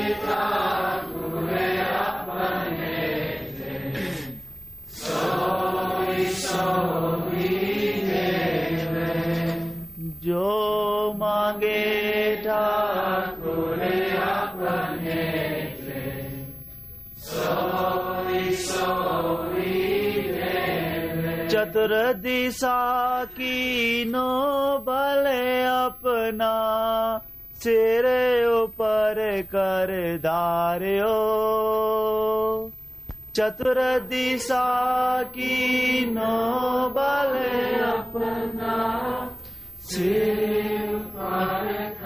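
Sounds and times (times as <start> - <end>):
person singing a hymn: 0.0 - 4.4, 5.0 - 16.5, 33.4 - 42.0.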